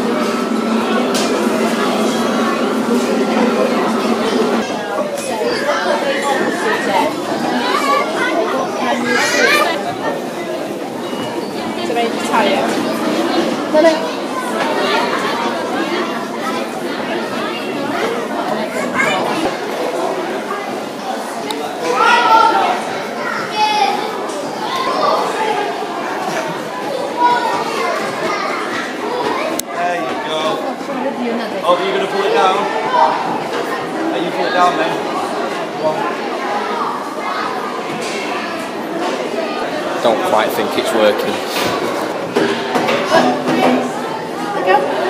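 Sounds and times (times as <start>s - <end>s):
children playing: 0.0s - 45.0s
indoor crowd chatter: 0.0s - 45.0s
people talking: 0.0s - 45.0s.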